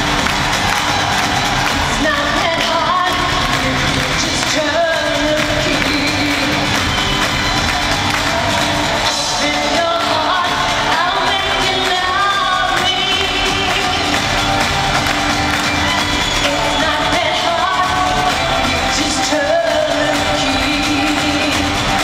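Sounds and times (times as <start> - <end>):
drums: 0.0 - 22.0
live pop concert music: 0.0 - 22.0
person singing lead vocal: 0.0 - 22.0.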